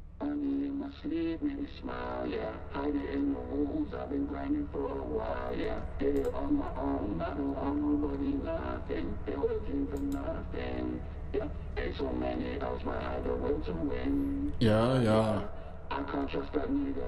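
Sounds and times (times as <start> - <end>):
vocoded rap vocal: 0.2 - 17.0.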